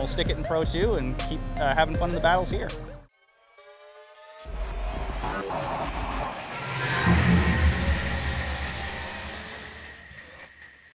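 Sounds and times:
deep boom: 0:06.9 - 0:09.6.

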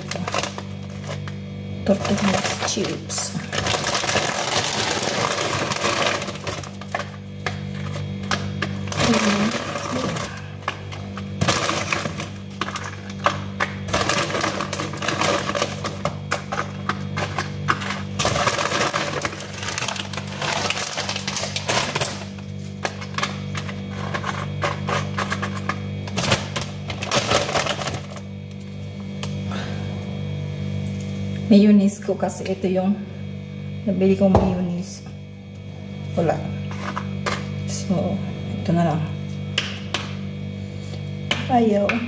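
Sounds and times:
chips rattling and crackling: 0:00.0 - 0:28.7
steady low hum: 0:00.0 - 0:42.0.

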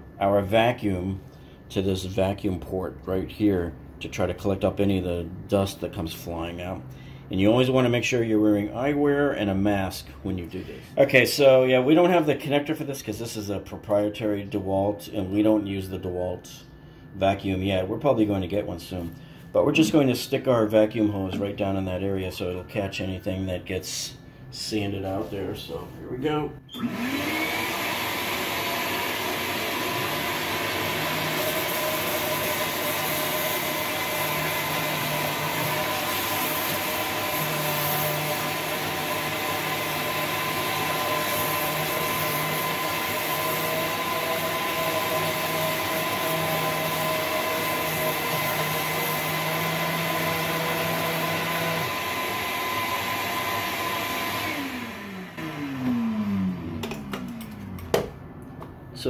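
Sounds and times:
vacuum running: 0:14.5 - 0:58.8
orbital sander grinding metal: 0:29.5 - 0:56.0.

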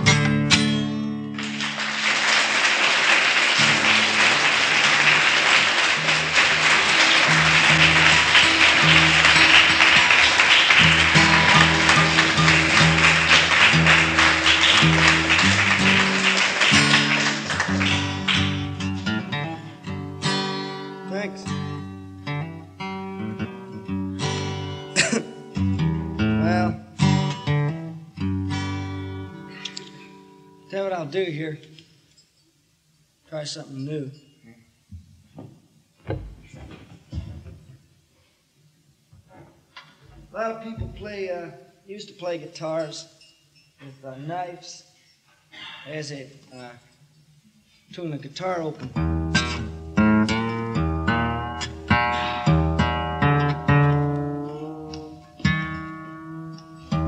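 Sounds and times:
acoustic guitar picking: 0:00.0 - 0:31.2, 0:39.2 - 0:41.5, 0:47.7 - 0:57.0
audience applause: 0:01.3 - 0:19.1, 0:51.6 - 0:53.6
single plucked guitar strings: 0:48.9 - 0:57.0.

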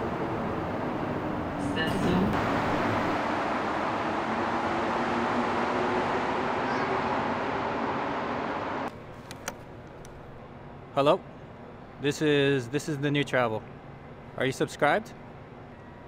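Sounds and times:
train rushing with low hum: 0:00.0 - 0:09.0.

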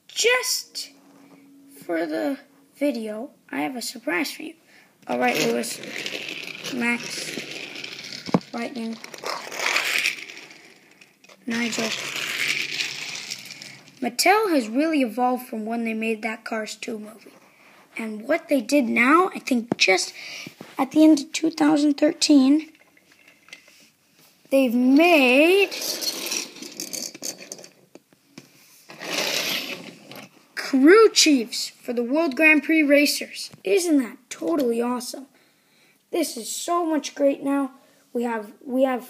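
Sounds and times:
toy cars sliding on wooden floor: 0:05.1 - 0:14.7, 0:22.6 - 0:24.0, 0:25.0 - 0:27.8, 0:28.7 - 0:30.8.

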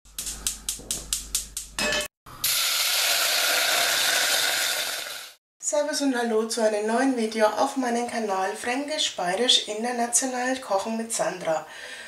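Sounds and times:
gas burner hissing: 0:02.4 - 0:05.4.

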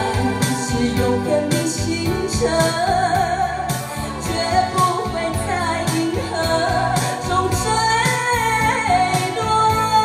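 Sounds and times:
backing track with beat: 0:00.0 - 0:10.0
woman singing pop ballad: 0:00.0 - 0:10.0.

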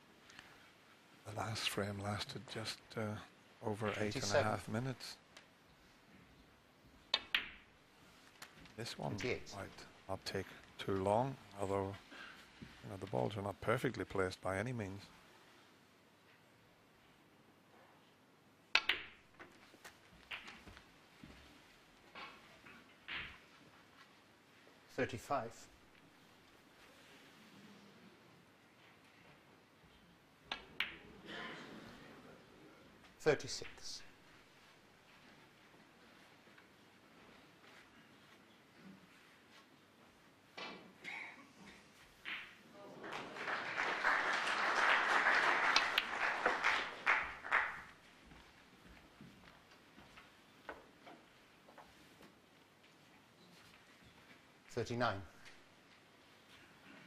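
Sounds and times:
balls clicking together: 0:07.1 - 0:07.7, 0:18.7 - 0:20.7
ball knocking into pocket: 0:18.7 - 0:19.2
audience applauding: 0:42.8 - 0:48.0.

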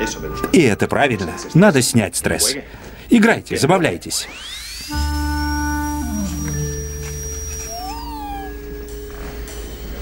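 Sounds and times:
high whistle sliding down: 0:04.2 - 0:09.8
warbling electronic glide: 0:04.3 - 0:09.0
low held electronic tones: 0:04.3 - 0:10.0.

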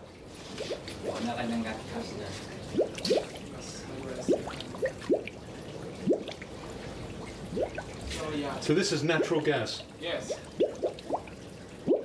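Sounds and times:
gas bubbles popping in water: 0:00.5 - 0:01.4, 0:02.6 - 0:08.1, 0:09.2 - 0:12.0.

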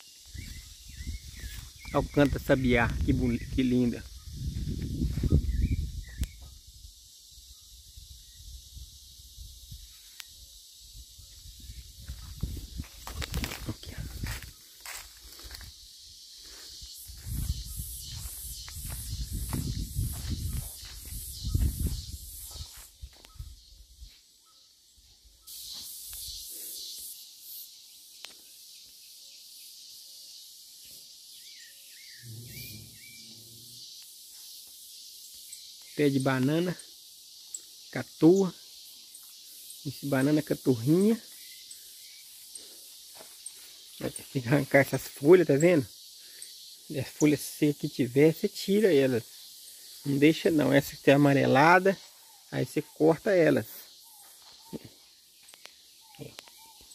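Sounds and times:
high pulsing hiss: 0:00.0 - 0:24.3, 0:25.2 - 0:56.9.

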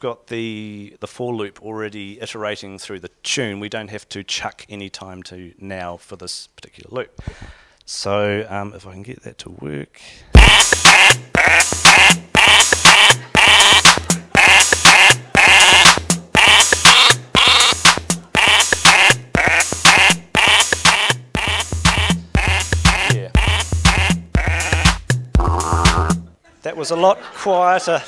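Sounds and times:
drum machine house beat: 0:10.4 - 0:26.3
pitched sample tune: 0:10.4 - 0:26.3.

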